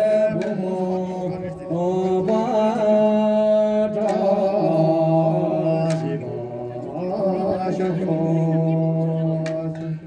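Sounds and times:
chant-like folk singing: 0.0s - 10.0s.

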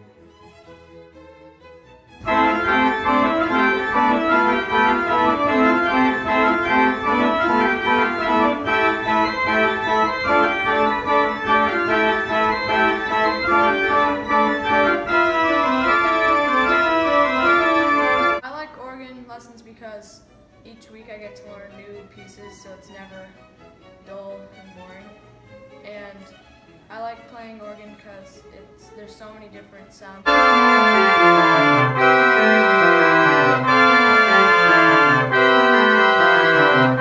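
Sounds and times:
church organ playing: 2.2s - 18.4s, 30.2s - 37.0s.

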